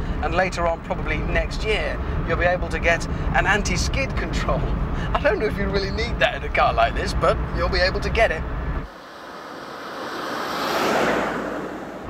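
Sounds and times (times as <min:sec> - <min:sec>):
tyre and road noise: 0:00.0 - 0:12.0
car passing by: 0:08.7 - 0:12.0.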